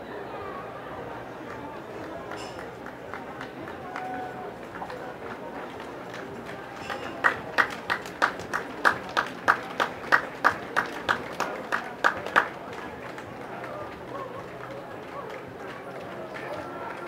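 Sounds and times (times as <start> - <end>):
outdoor crowd murmur: 0.0 - 17.0.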